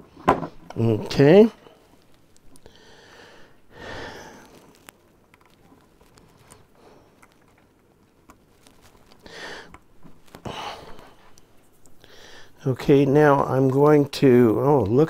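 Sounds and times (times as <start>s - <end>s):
person breathing: 2.6s - 4.9s, 6.7s - 7.3s, 9.2s - 9.8s, 10.4s - 12.6s
cable plug clicks and rubs: 4.4s - 10.4s.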